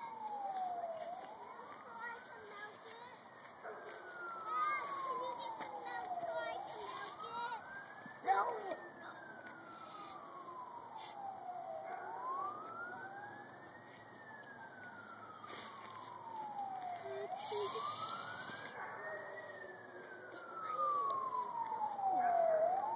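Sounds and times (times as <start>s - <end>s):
emergency vehicle siren wailing: 0.0s - 22.9s.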